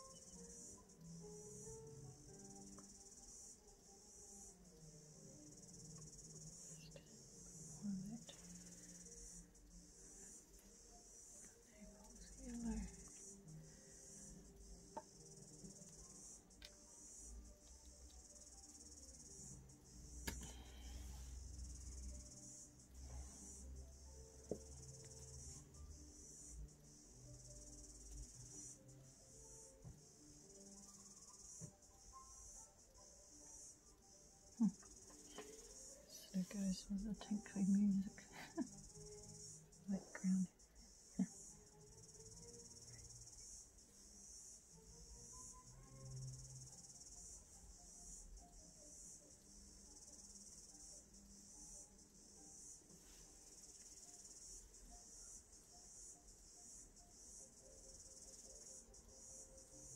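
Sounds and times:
insects chirring: 0:00.0 - 0:59.9
quiet tinkly music: 0:00.0 - 0:59.9.

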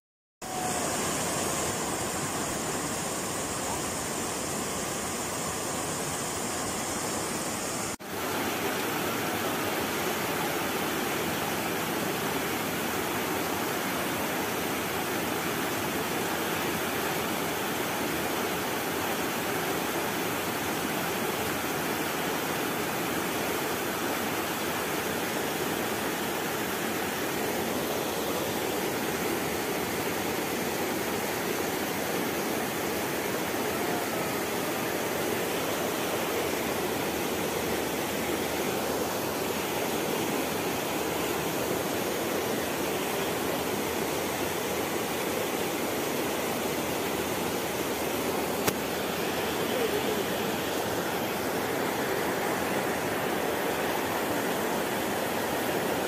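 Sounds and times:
river water rushing over rocks: 0:00.4 - 0:56.0.

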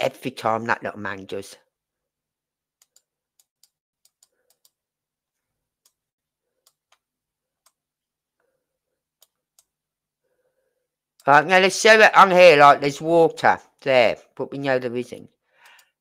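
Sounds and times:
computer mouse clicks: 0:02.8 - 0:04.8, 0:09.2 - 0:09.8, 0:15.6 - 0:16.0.

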